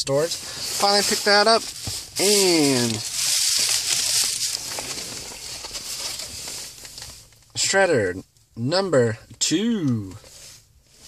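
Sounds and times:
steady hiss: 0.0 - 7.3
plastic packaging rustling: 0.0 - 7.5.

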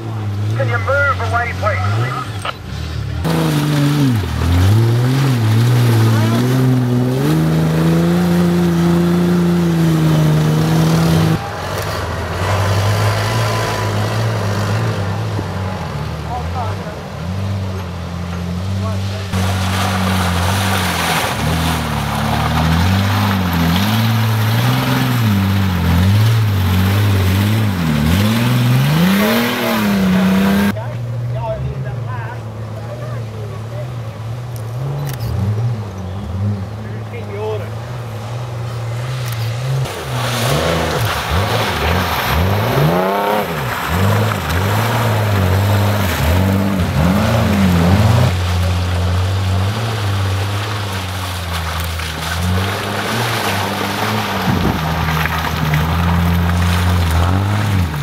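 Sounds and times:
off-road engines revving: 0.0 - 58.0.

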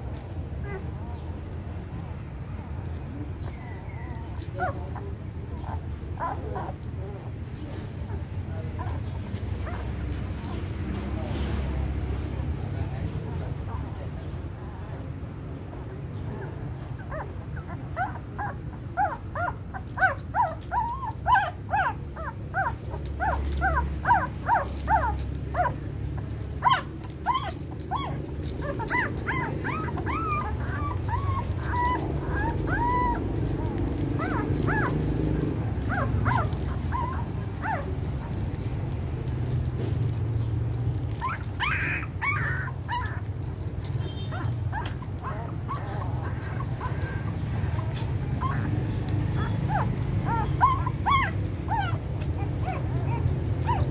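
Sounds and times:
puppies whining: 0.0 - 12.4, 15.6 - 53.9
puppies squeaking: 0.0 - 12.6, 15.6 - 53.9.

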